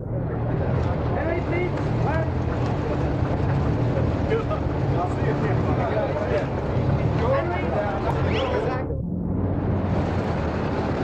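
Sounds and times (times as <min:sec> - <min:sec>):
crowd chatter: 0:00.0 - 0:09.0
steady low rumble: 0:00.0 - 0:11.0.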